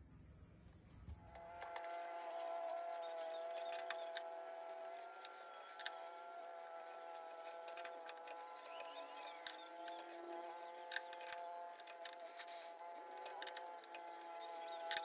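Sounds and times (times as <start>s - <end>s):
workshop hum: 0.0s - 15.0s.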